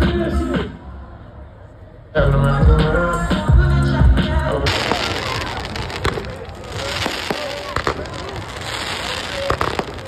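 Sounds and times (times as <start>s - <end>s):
fireworks bangs and crackles: 4.6s - 10.0s.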